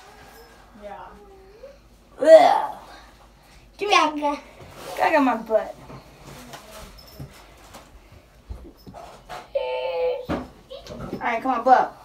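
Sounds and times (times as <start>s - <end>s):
toddler high-pitched whine: 9.3s - 11.0s.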